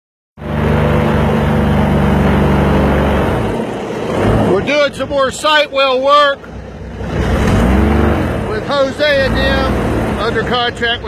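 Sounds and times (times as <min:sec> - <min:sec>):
vehicle engine running: 0:00.4 - 0:11.0.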